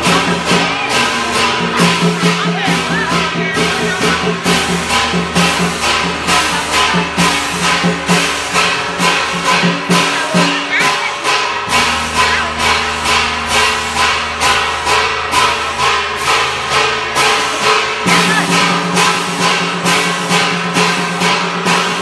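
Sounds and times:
metallic percussion strikes: 0:00.0 - 0:22.0
sustained melodic tones: 0:00.0 - 0:22.0.

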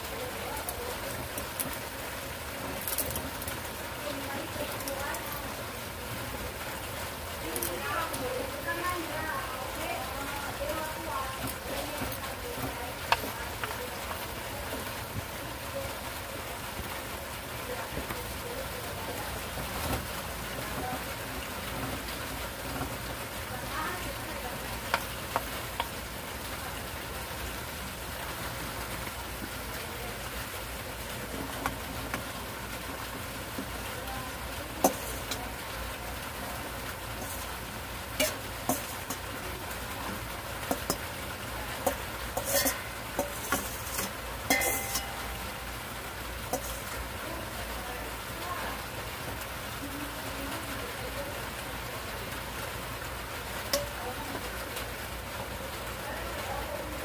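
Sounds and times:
food sizzling in a frying pan: 0:00.0 - 0:57.0
spatula clicking against pan: 0:13.1 - 0:13.8, 0:24.9 - 0:26.0, 0:40.6 - 0:41.1.

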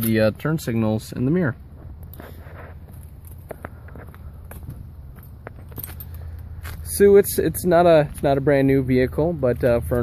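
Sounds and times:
footsteps on asphalt: 0:01.6 - 0:07.2.

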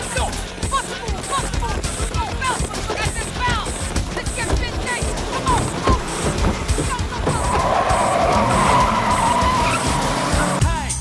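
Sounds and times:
music playing: 0:00.0 - 0:11.0
car tyres squealing: 0:00.1 - 0:10.6.

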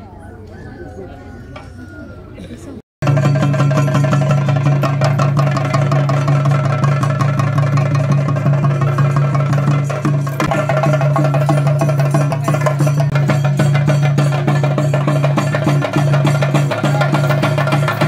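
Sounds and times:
fast loud drumming: 0:03.0 - 0:18.0.

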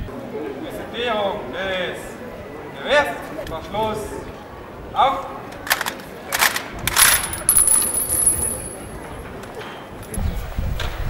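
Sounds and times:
rifles clattering: 0:05.6 - 0:09.0.

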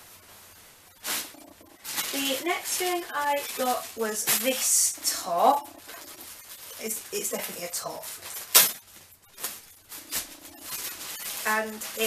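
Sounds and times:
clothing rustling: 0:01.0 - 0:12.0.

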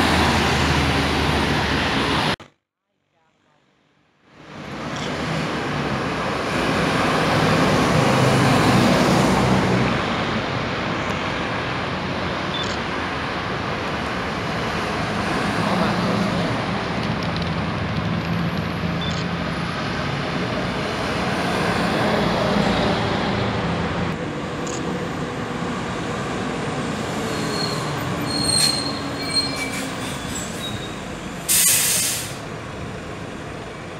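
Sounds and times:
buses driving past: 0:00.0 - 0:02.4, 0:04.3 - 0:33.9
traffic noise: 0:00.0 - 0:02.5, 0:03.8 - 0:33.9
brake squeals: 0:27.1 - 0:32.4
air brakes hissing: 0:27.5 - 0:32.5.

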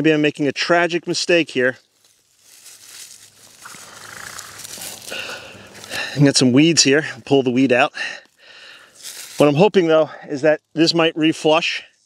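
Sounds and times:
plant foliage rustling: 0:00.6 - 0:07.2, 0:08.2 - 0:09.8.

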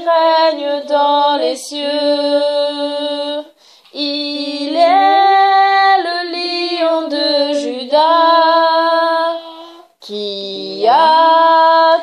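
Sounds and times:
woman singing unaccompanied: 0:00.0 - 0:12.0
breath: 0:03.6 - 0:03.9.

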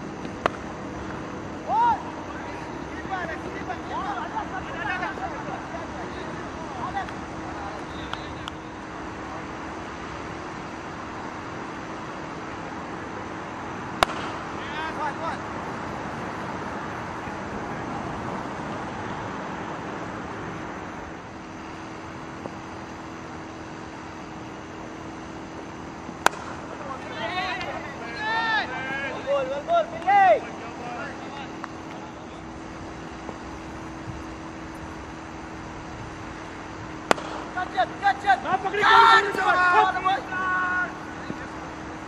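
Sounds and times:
cricket bat striking ball: 0:00.2 - 0:01.2, 0:13.9 - 0:14.6, 0:26.1 - 0:26.8, 0:36.9 - 0:38.8
players shouting: 0:01.6 - 0:09.7, 0:14.0 - 0:17.9, 0:26.1 - 0:33.9, 0:36.4 - 0:42.0.

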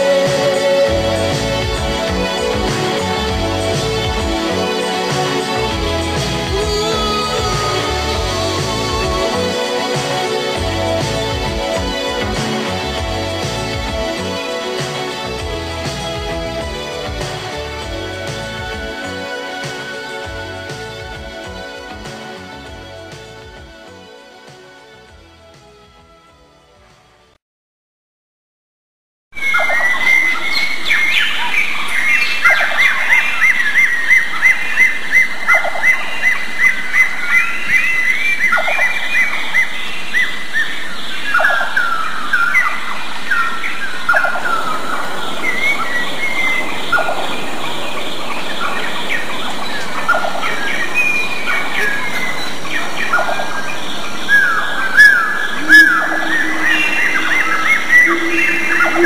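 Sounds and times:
birds chirping and calling: 0:29.4 - 0:59.0
steady low tone: 0:55.5 - 0:59.0.

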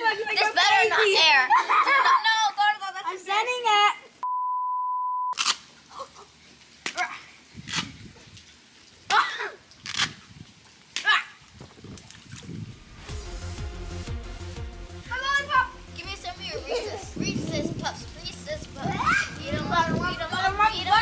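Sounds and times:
censor bleep tone: 0:04.2 - 0:05.4.

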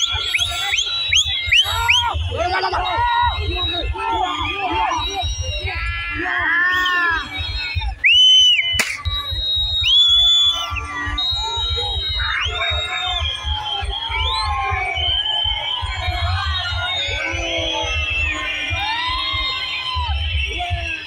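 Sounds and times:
crowd shouting and whistling: 0:00.0 - 0:21.0
sharp click: 0:08.8 - 0:09.1.

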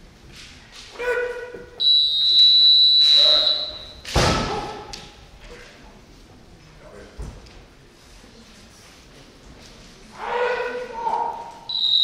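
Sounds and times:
kiai shout: 0:00.9 - 0:01.8, 0:03.0 - 0:05.0, 0:10.2 - 0:11.7.

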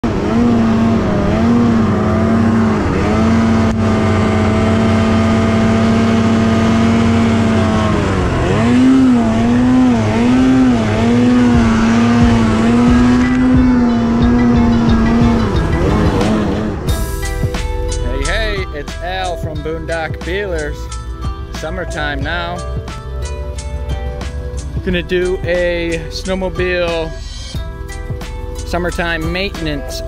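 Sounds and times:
snowmobile engine revving: 0:00.0 - 0:20.9.

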